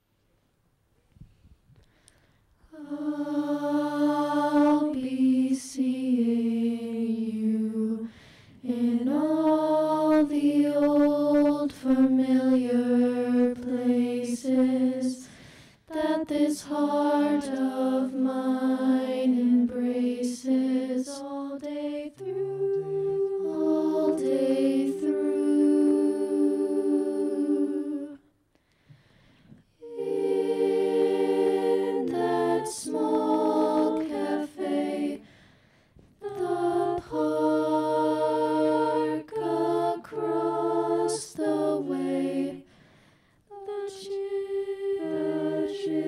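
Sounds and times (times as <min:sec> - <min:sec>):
a cappella group singing: 0:02.7 - 0:28.4, 0:29.7 - 0:46.0.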